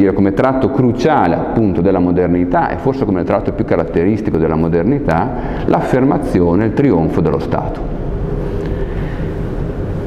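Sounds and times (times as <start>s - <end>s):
room hum and hiss: 0.0s - 10.0s.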